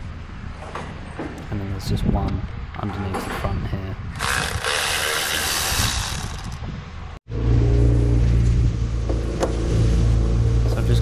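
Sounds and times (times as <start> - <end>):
electric ratchet running: 4.2 - 6.6.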